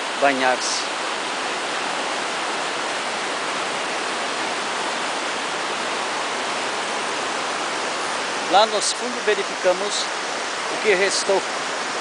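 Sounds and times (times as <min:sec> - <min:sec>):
water rushing over rocks: 0:00.0 - 0:12.0.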